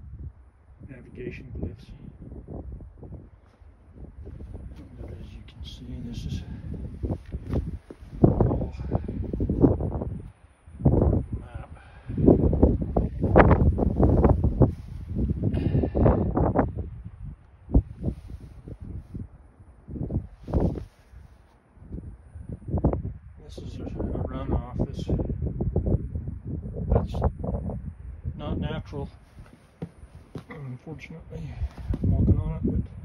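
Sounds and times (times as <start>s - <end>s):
wind buffeting microphone: 0.0s - 30.6s, 31.3s - 33.0s.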